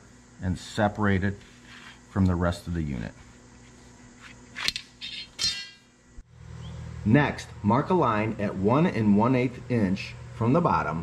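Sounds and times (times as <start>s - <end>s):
metallic clink and ring: 5.0s - 5.8s.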